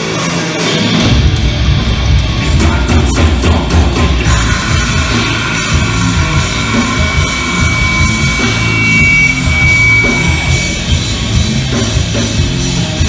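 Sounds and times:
bass: 0:00.0 - 0:13.0
distorted electric guitars: 0:00.0 - 0:13.0
pounding drum kit: 0:00.0 - 0:13.0
high steady tone: 0:04.4 - 0:11.4.

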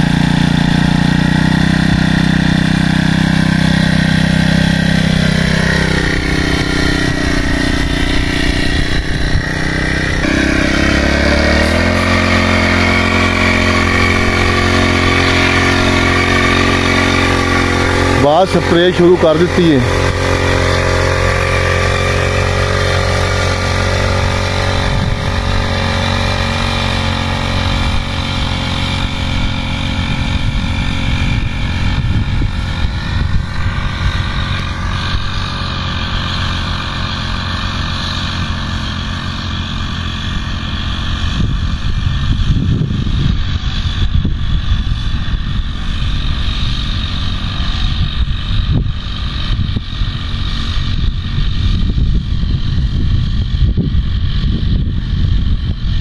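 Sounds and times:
small petrol engine running: 0:00.0 - 0:56.0.

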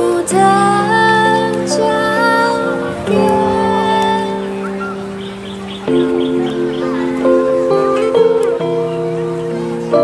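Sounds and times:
acoustic guitar: 0:00.0 - 0:10.0
electric keyboard chords: 0:00.0 - 0:10.0.

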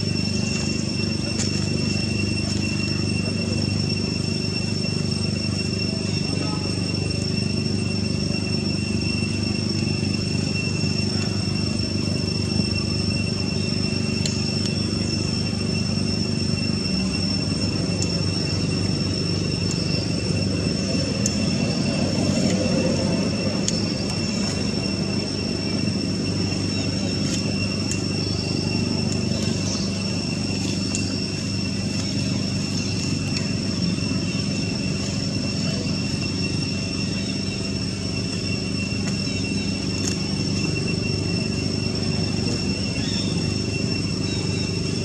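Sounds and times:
constant high-pitched whine: 0:00.0 - 0:45.0.

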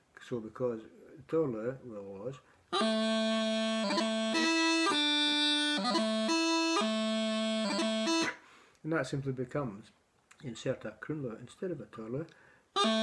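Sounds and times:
bagpipe practice chanter playing: 0:02.7 - 0:08.5, 0:12.8 - 0:13.0.

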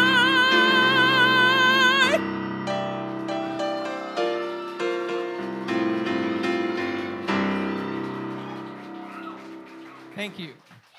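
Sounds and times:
keyboard piano chords: 0:00.0 - 0:10.6.

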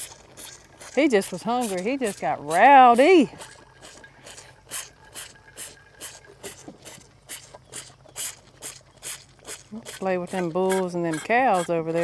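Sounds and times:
calf sucking on a bottle: 0:00.0 - 0:12.0.

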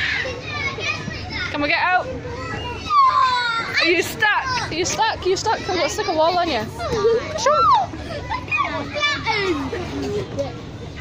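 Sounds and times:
young children squealing: 0:02.3 - 0:04.0, 0:07.4 - 0:09.5.

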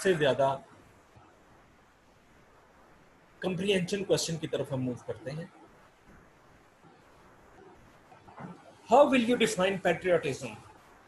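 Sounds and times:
man speaking: 0:00.0 - 0:00.6, 0:03.4 - 0:05.5, 0:08.9 - 0:10.6
faint room hiss: 0:00.0 - 0:11.0.

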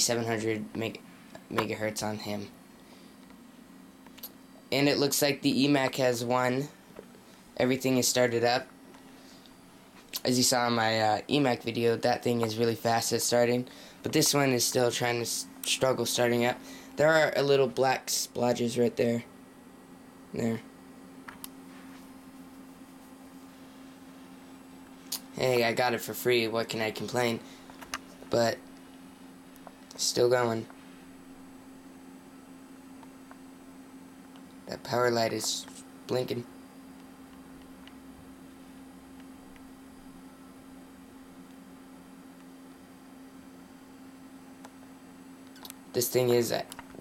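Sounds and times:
computer hum with light hiss: 0:00.0 - 0:47.0.

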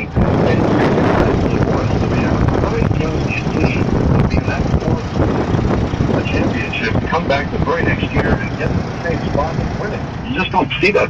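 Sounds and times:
radio talk-show voice: 0:00.0 - 0:11.0
vehicle driving rumble: 0:00.0 - 0:11.0.

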